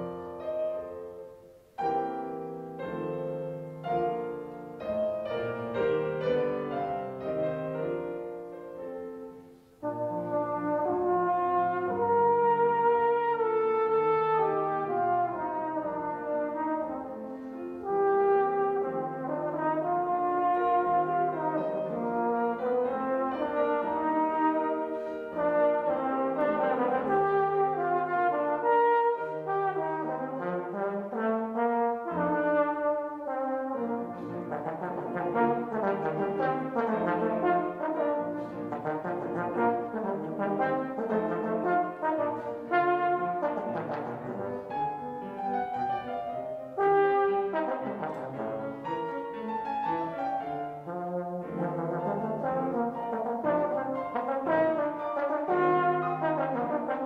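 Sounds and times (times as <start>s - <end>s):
piano accompaniment: 0.0s - 57.0s
trombone melody: 0.0s - 57.0s.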